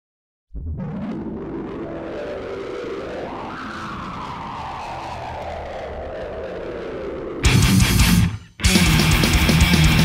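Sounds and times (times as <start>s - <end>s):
low rumble: 0.5s - 8.2s
slowly falling whine: 0.6s - 8.4s.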